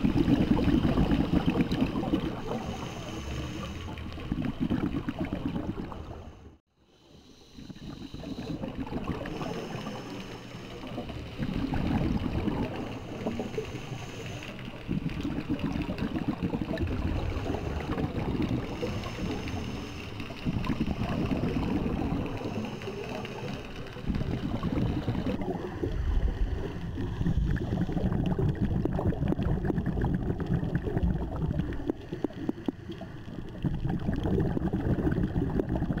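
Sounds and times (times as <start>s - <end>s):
exhaled bubbles gurgling underwater: 0.0s - 6.6s, 7.4s - 36.0s.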